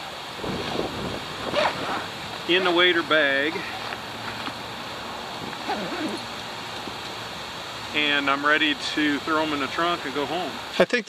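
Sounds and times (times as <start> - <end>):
zipper being drawn closed: 1.5 - 2.1, 5.4 - 6.3.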